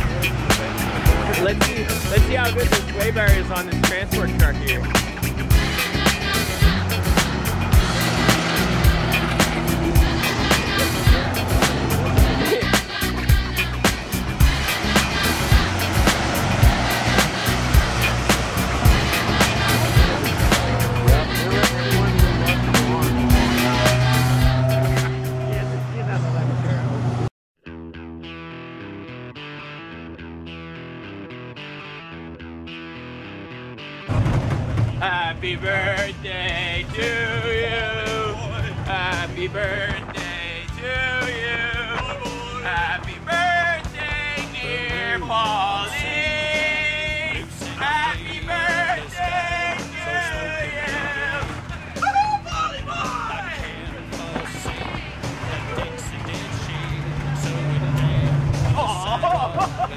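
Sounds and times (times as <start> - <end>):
country song with singing: 0.0 - 25.4, 35.0 - 59.9
loud music with dense beat: 0.0 - 26.1.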